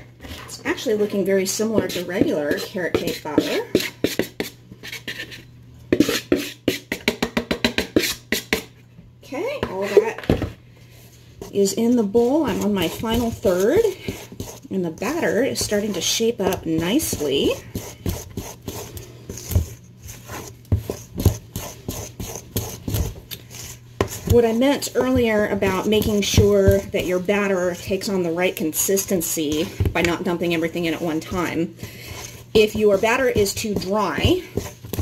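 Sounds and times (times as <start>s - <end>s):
spoon stirring batter in metal bowl: 0.0s - 8.9s, 9.5s - 35.0s
plastic bowl knocking on steel bowl: 6.9s - 8.0s.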